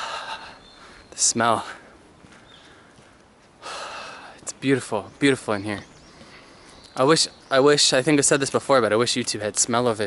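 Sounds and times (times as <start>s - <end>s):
man breathing in: 2.6s - 4.4s.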